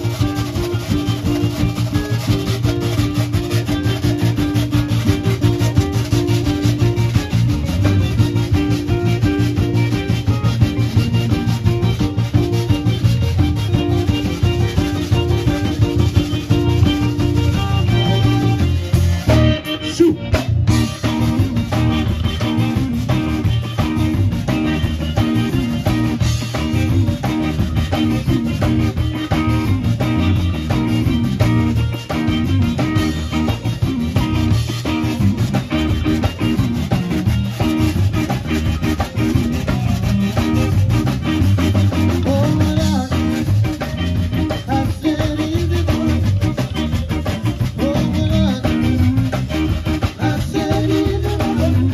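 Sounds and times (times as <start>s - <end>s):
accordion chords: 0.0s - 51.9s
drum kit dance beat: 0.0s - 51.9s
electric bass: 0.0s - 51.9s
electric guitar: 0.0s - 51.9s.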